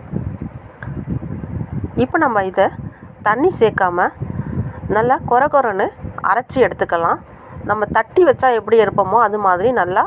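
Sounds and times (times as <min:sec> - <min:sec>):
low uneven background rumble: 0:00.0 - 0:10.0.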